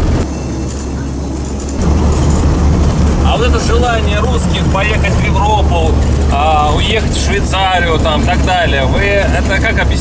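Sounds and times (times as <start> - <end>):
road noise rumble: 0.0 - 10.0
van engine drone: 0.0 - 10.0.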